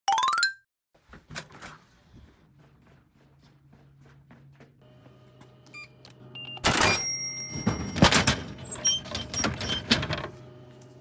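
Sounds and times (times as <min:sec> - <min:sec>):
vending machine beeps: 0:05.6 - 0:10.2.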